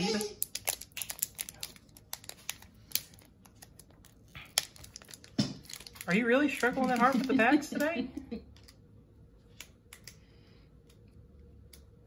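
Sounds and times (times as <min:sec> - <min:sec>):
foil wrapper crinkling and tearing: 0:00.0 - 0:07.6.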